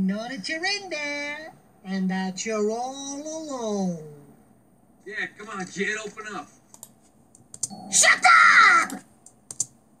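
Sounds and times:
cartoon boy yelling angrily: 7.8 - 9.0.

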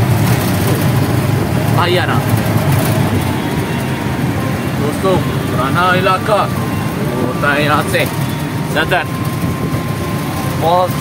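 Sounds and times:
auto-rickshaw engine rumble: 0.0 - 11.0.

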